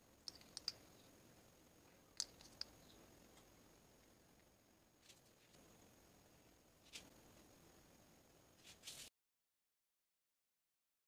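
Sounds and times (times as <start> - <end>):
spoon clicking against cup: 0.3 - 0.8, 2.2 - 2.7.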